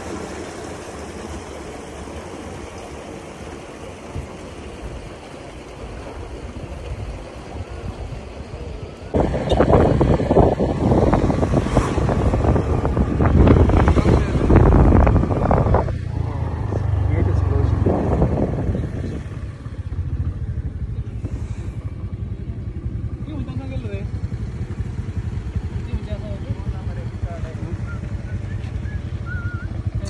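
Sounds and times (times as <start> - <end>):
wind rumble on microphone: 4.0 - 30.0
motorcycle engine running: 8.0 - 30.0.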